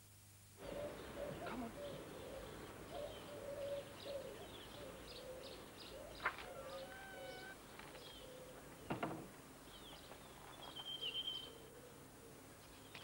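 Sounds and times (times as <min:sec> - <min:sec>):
pigeon cooing: 0:00.6 - 0:08.7
small birds chirping: 0:00.6 - 0:09.0.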